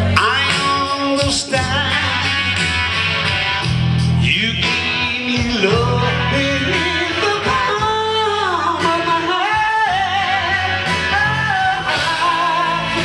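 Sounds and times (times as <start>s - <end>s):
live rock band playing: 0.0s - 13.0s
singer's wordless melodic line: 0.0s - 13.0s.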